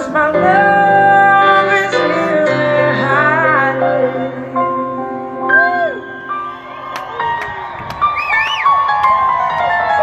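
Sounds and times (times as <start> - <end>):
person singing: 0.0 - 6.2
live band playing slow ballad: 0.0 - 10.0
piano chords: 0.0 - 10.0
audience whooping: 5.6 - 10.0.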